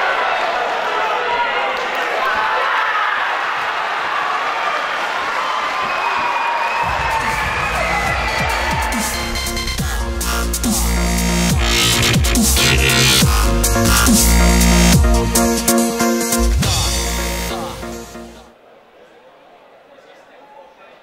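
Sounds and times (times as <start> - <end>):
crowd shouting and cheering: 0.0 - 19.7
electronic music with heavy bass: 7.1 - 18.5.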